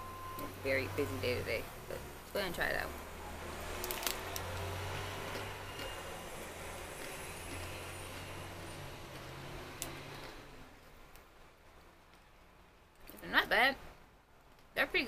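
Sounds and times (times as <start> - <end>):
crunchy snack chewing: 3.6 - 10.6.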